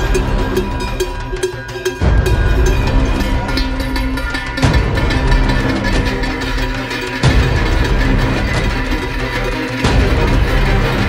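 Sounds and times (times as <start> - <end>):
cinematic background music: 0.0 - 11.0.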